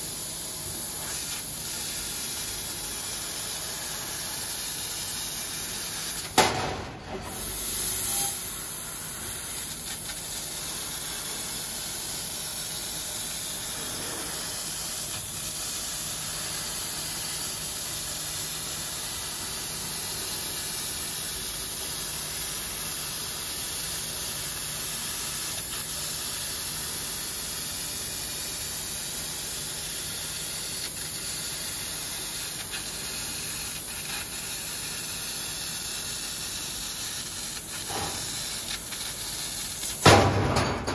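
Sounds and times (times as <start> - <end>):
laser cutter gas hiss: 0.0 - 40.6.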